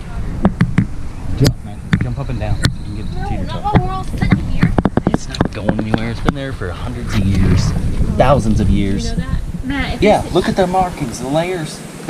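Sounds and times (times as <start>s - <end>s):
low rumble: 0.0s - 11.2s
camera handling knocks: 0.4s - 0.9s, 3.7s - 6.4s
person's voice: 1.4s - 11.4s.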